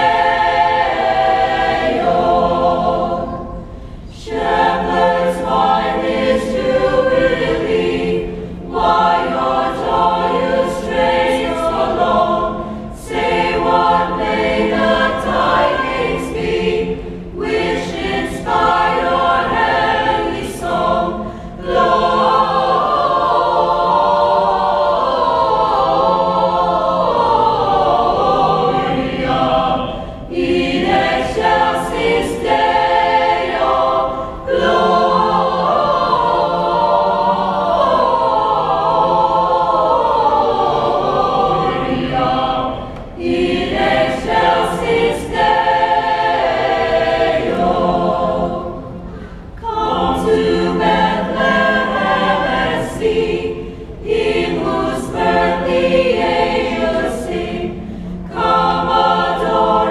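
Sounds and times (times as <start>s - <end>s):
choir singing: 0.0s - 59.9s.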